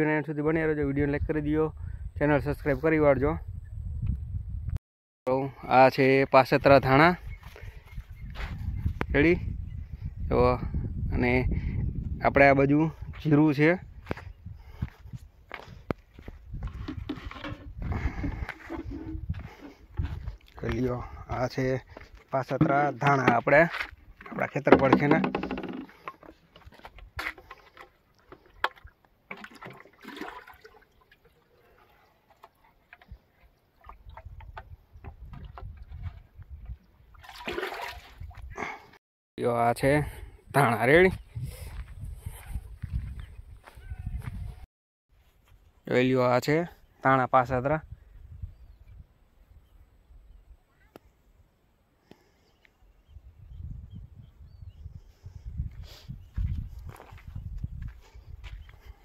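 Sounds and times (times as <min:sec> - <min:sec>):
wind buffeting microphone: 0:00.8 - 0:04.8, 0:06.6 - 0:22.2, 0:33.9 - 0:37.3, 0:40.0 - 0:44.6, 0:47.8 - 0:50.5, 0:53.0 - 0:59.0
footsteps on dry soil: 0:06.6 - 0:09.2, 0:12.9 - 0:24.7, 0:40.0 - 0:45.9, 0:55.2 - 0:59.0.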